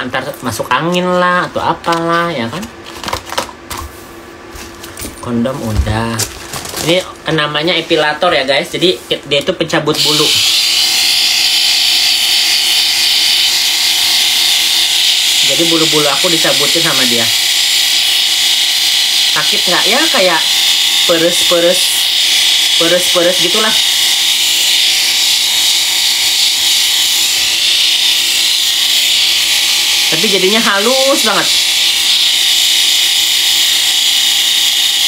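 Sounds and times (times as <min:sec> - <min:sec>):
electric epilator whirring: 0:09.9 - 0:35.0.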